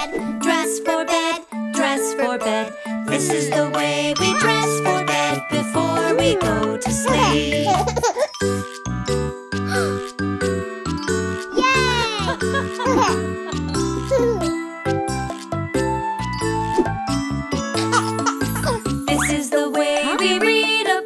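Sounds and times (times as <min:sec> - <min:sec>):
gentle lullaby music with chimes: 0:02.4 - 0:11.6.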